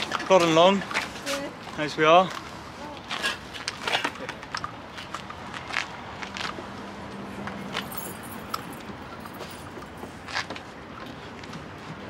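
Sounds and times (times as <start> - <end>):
hose fittings clicking and rattling: 7.8 - 9.9.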